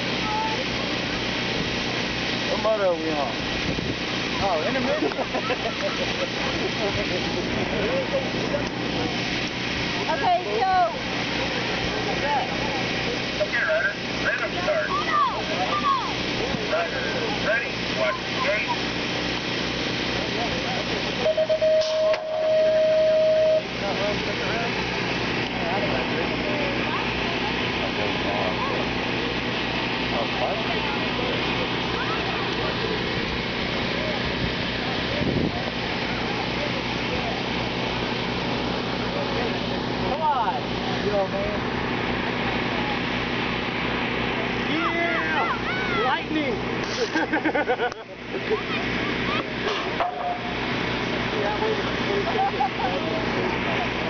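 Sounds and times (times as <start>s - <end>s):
outdoor noise hiss: 0.0s - 54.0s
voices chattering: 4.1s - 54.0s
steady electronic tone: 21.2s - 24.6s, 50.0s - 50.7s.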